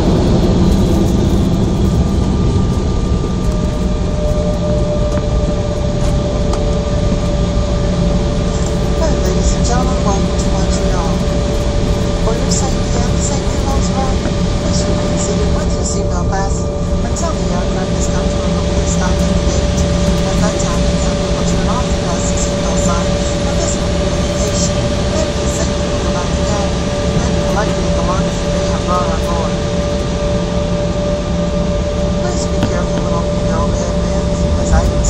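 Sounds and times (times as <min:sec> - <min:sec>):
jet engines whining in cabin: 0:00.0 - 0:35.0
faint voices: 0:32.2 - 0:35.0.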